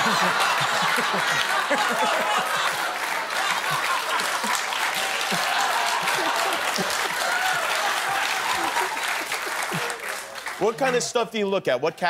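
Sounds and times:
audience laughter: 0.0s - 11.0s
audience applauding: 0.0s - 11.3s.

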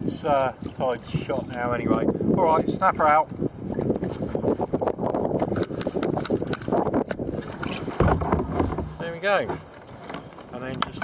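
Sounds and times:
wind buffeting microphone: 0.0s - 11.0s
fishing gear clicking: 5.4s - 11.0s.

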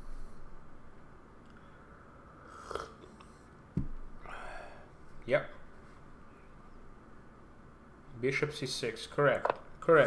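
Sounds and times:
man sipping from a mug: 2.4s - 3.4s
low thump: 3.8s - 4.1s
breathy exhale: 4.2s - 4.9s.

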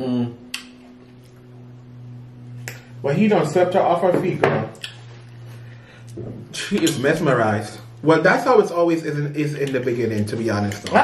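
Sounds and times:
man humming mmm: 0.0s - 0.6s.

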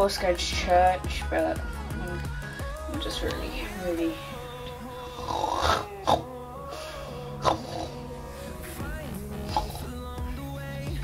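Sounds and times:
person imitating snoring: 3.2s - 8.6s, 9.2s - 10.2s.

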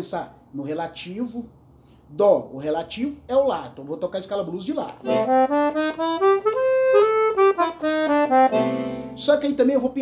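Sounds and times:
accordion playing a quick run: 5.0s - 9.3s.

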